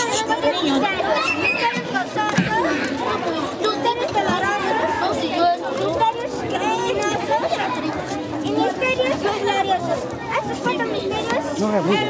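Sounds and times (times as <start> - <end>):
children talking at once: 0.0 - 12.0.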